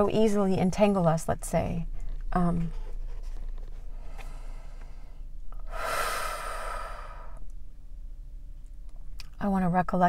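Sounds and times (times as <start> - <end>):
woman breathing: 3.8 - 7.4.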